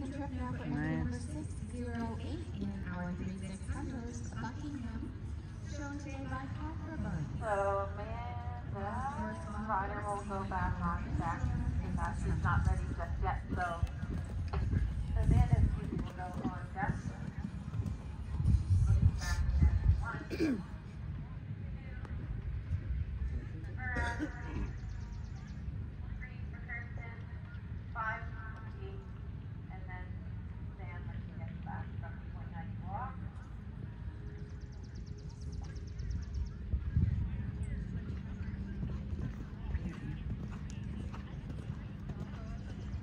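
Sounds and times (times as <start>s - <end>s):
faint voices: 0.0s - 43.0s
low outdoor rumble: 0.0s - 43.0s
horse hoofbeats on sand: 1.8s - 19.1s, 35.4s - 43.0s.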